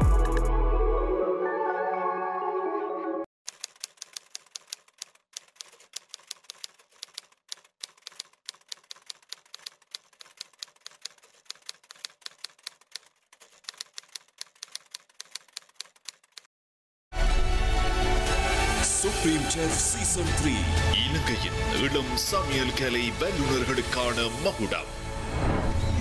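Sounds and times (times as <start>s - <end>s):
typewriter key clicks: 3.5s - 16.5s.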